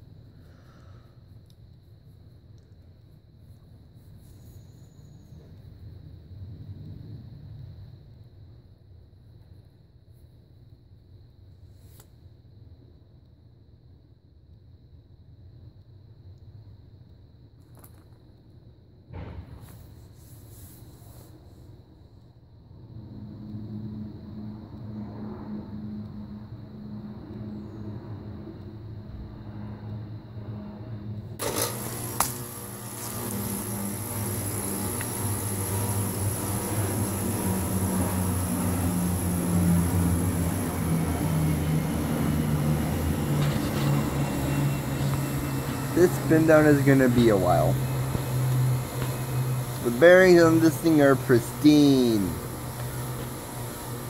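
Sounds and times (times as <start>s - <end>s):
ceiling fan motor hum: 22.6s - 54.0s
rush of air from fan blades: 22.7s - 54.0s.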